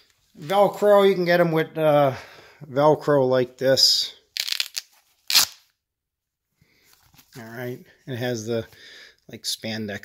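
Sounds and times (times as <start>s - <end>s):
velcro ripping open: 4.4s - 5.8s.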